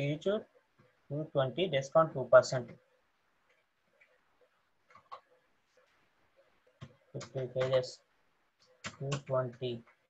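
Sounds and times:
computer keyboard clicks: 4.9s - 5.3s, 8.8s - 10.0s.

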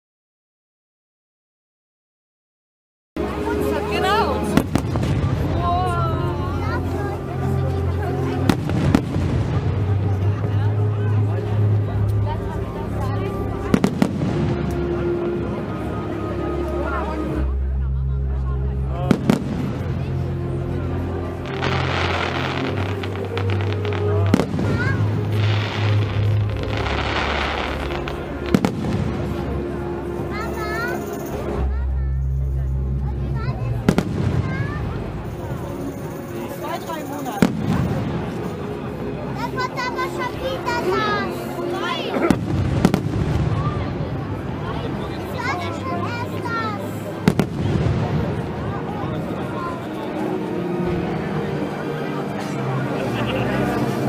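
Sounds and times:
spectators' voices: 3.2s - 54.0s
fireworks bangs: 4.5s - 5.7s, 21.5s - 29.4s, 42.3s - 44.1s, 47.2s - 48.6s.

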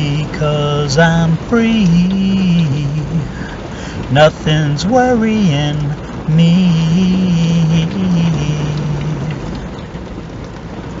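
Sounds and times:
man singing: 0.0s - 9.6s
steady rushing noise in car: 0.0s - 11.0s.

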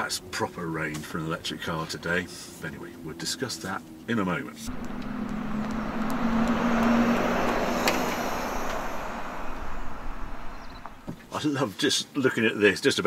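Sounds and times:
steady low hum: 4.6s - 11.3s
tyre and road noise: 4.6s - 11.4s.

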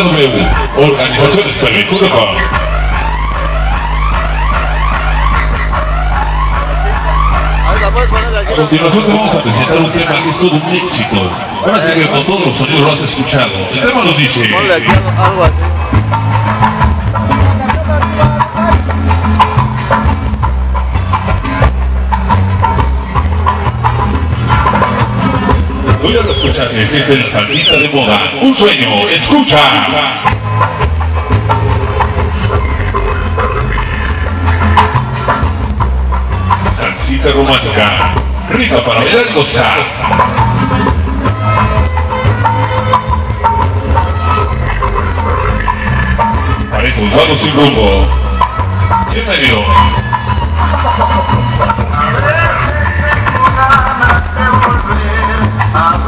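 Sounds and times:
electronic rising siren sweeps: 0.0s - 13.2s
deep bass drone: 0.0s - 56.0s
salsa music over sound system: 0.0s - 56.0s.

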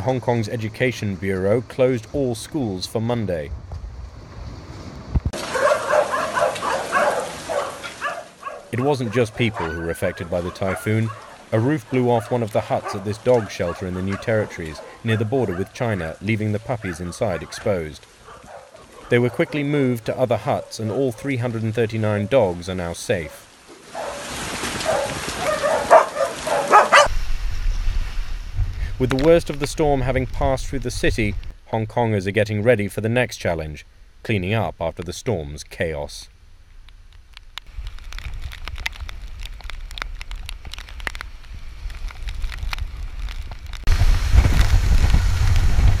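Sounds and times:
rain pattering: 0.0s - 27.2s, 28.5s - 32.8s, 36.8s - 46.0s
dogs whining: 5.5s - 15.8s, 24.9s - 27.1s
strong wind buffeting microphone: 26.7s - 31.5s, 37.8s - 46.0s.

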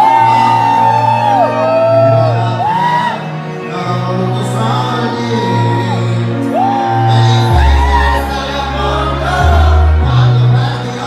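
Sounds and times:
man singing long held notes: 1.8s - 11.0s
pop backing track with bass: 6.6s - 11.0s.

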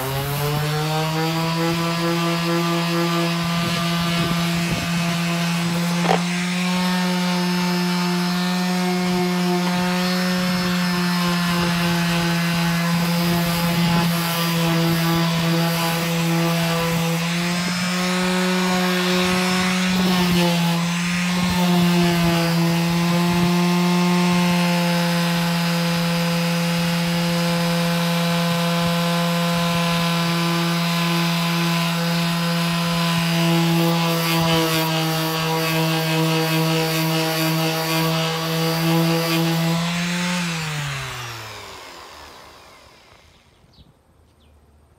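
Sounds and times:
orbital sander running: 0.0s - 43.7s
sander motor winding down: 0.0s - 43.8s.

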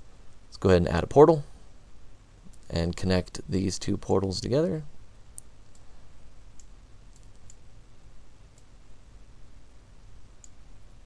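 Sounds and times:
low steady hum: 0.0s - 11.0s
computer mouse clicks: 6.6s - 7.6s, 10.4s - 10.6s.

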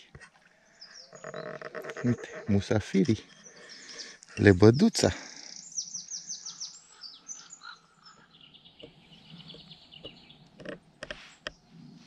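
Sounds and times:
songbirds singing: 0.0s - 12.0s.

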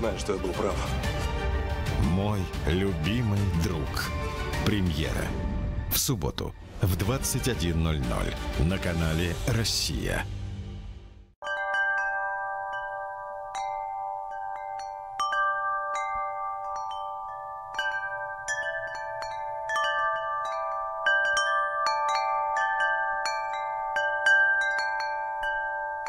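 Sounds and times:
metal chimes ringing: 11.4s - 26.0s.

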